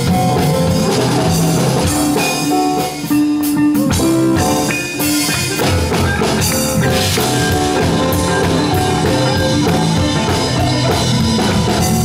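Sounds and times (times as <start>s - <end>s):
live band with guitar and drums: 0.0s - 12.0s.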